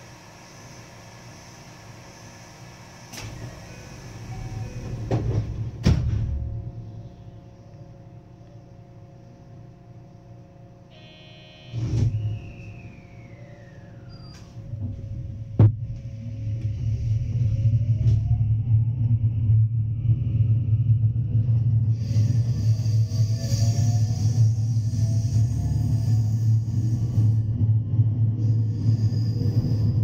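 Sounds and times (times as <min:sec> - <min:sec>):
train rumble: 0:00.0 - 0:10.0, 0:11.9 - 0:30.0
train motors whining: 0:00.0 - 0:18.8, 0:21.6 - 0:30.0
loud thump: 0:15.6 - 0:15.9.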